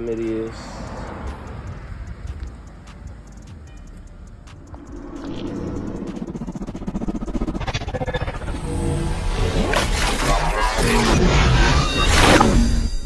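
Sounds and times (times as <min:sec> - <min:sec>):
music: 0:01.1 - 0:06.8.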